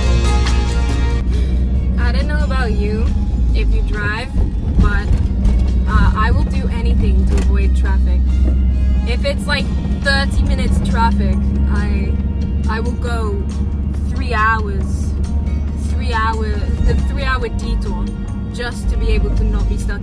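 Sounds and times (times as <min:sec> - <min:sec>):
engine and road rumble: 0:00.0 - 0:20.0
music playing in vehicle: 0:00.0 - 0:20.0.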